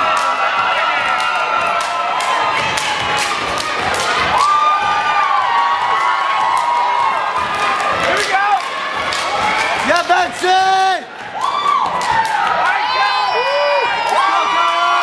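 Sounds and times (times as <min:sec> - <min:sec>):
stomping and clapping on wooden stage: 0:00.0 - 0:12.9
crowd cheering and shouting: 0:00.0 - 0:15.0.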